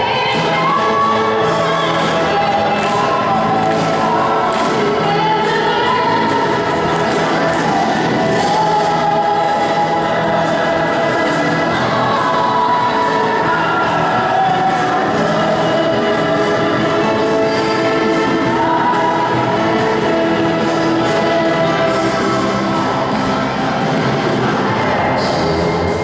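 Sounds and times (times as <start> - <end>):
woman singing into a microphone: 0.0 - 22.2
youth choir singing: 0.0 - 26.0.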